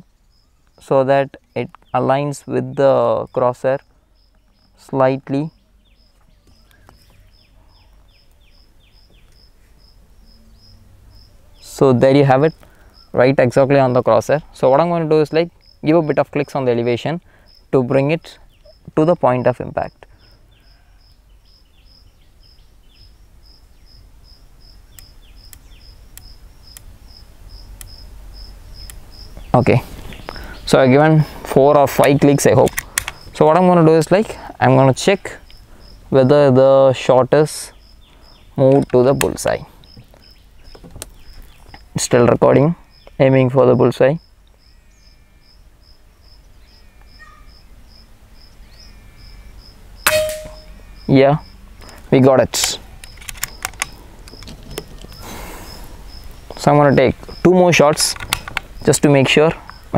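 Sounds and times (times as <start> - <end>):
cricket chirping: 0.0 - 0.8, 3.7 - 4.8, 5.4 - 11.5, 15.3 - 18.0, 18.6 - 29.4, 32.8 - 33.3, 35.4 - 36.1, 37.7 - 41.6, 42.7 - 52.0, 52.9 - 59.9
rifle scope turret clicks: 32.0 - 33.2, 52.6 - 55.1
air rifle shot: 50.1 - 50.7.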